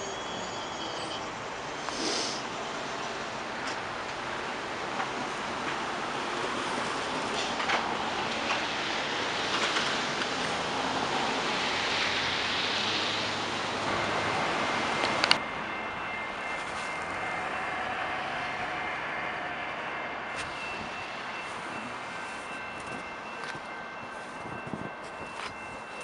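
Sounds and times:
train rushing: 0.0 - 26.0.

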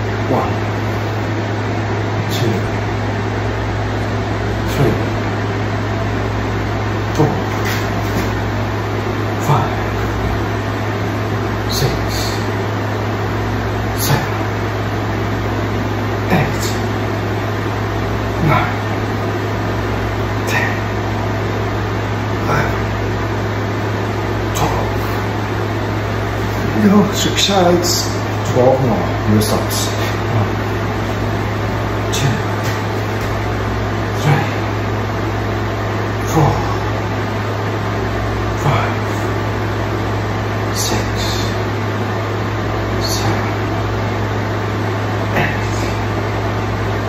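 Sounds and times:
low machine hum: 0.0 - 47.0.

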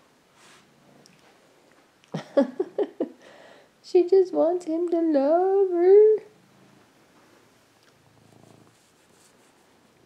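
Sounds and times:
cat purring faintly: 4.6 - 10.0.

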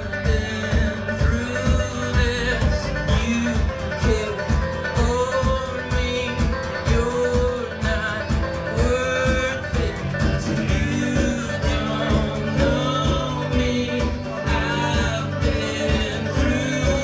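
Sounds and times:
folk band playing: 0.0 - 17.0
sliding melody line: 0.0 - 17.0.

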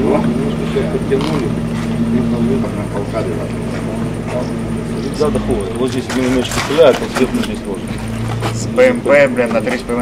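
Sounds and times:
indistinct voices: 0.0 - 10.0
steady engine hum: 0.0 - 10.0.

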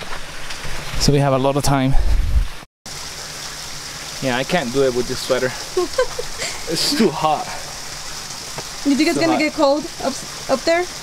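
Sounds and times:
outdoor background hiss: 2.9 - 11.0.

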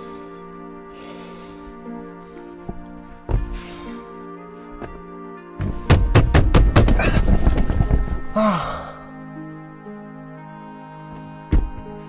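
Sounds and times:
soft background music: 0.0 - 12.0
man weeping: 8.3 - 9.1
man's anguished cry: 8.4 - 9.1.

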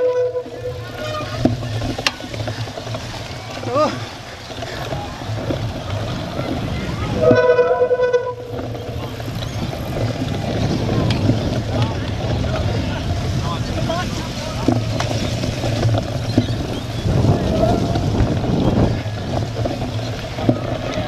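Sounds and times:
bike knocks and rattles: 0.0 - 21.0
wind and tyre rumble: 0.0 - 21.0.

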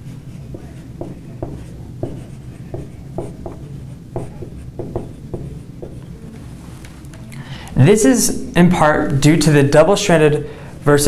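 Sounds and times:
marker squeaking on whiteboard: 0.0 - 7.3
low room hum: 0.0 - 11.0.

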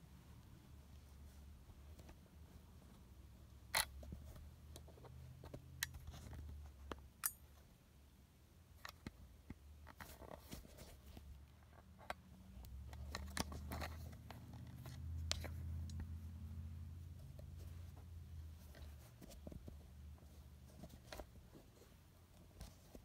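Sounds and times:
faint low hum: 0.0 - 23.0.

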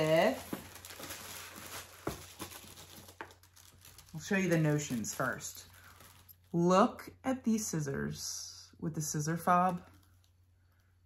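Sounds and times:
tissue paper rustling: 0.0 - 6.6.

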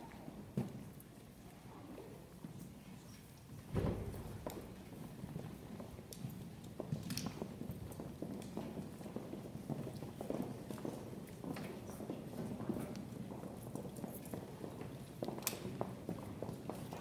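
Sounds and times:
footsteps on hardwood floor: 6.7 - 17.0.

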